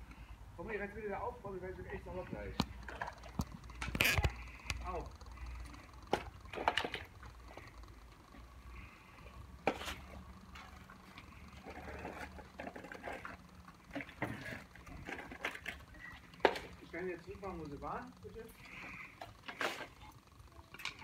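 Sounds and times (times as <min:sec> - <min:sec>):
water sloshing in plastic bucket: 0:01.9 - 0:04.7.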